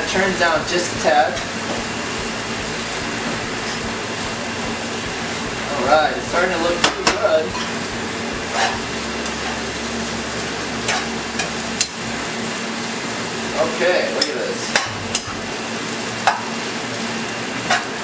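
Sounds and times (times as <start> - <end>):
food sizzling in a wok: 0.2 - 18.0.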